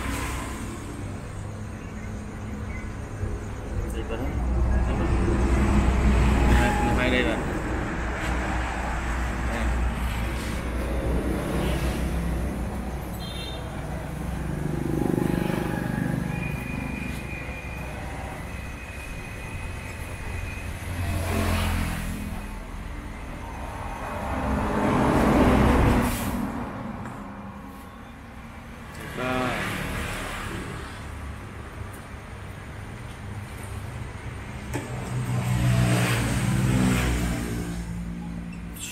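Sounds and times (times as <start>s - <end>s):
road traffic rumble: 0.0s - 38.9s
vehicles passing: 0.0s - 38.9s.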